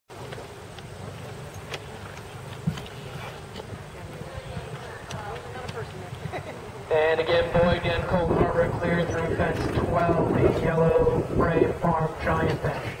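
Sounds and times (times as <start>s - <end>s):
faint distant voices: 0.3s - 13.0s
low rumble: 7.2s - 12.8s.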